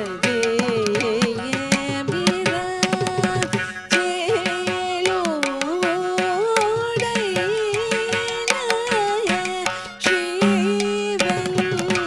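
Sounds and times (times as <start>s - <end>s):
rapid hand drum strokes: 0.0s - 12.0s.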